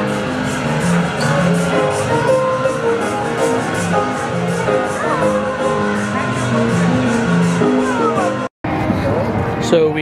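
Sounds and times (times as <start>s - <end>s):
carousel music: 0.0s - 8.8s.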